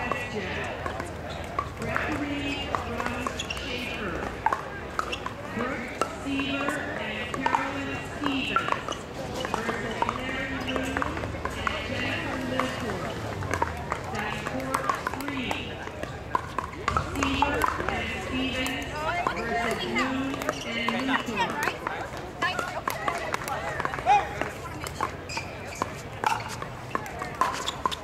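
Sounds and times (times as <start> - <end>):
paddles hitting balls: 0.0 - 28.0
people's voices: 0.0 - 28.0.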